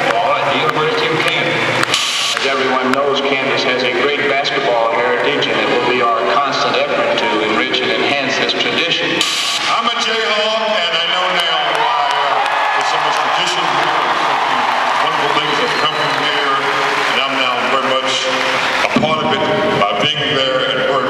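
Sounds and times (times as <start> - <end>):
man speaking over public address: 0.0 - 21.0.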